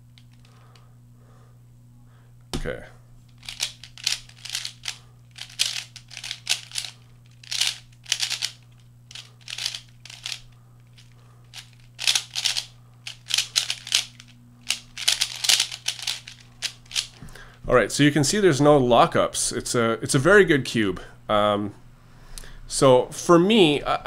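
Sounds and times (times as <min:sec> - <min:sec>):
plastic puzzle cube clicking: 0:03.4 - 0:10.4, 0:11.0 - 0:17.1.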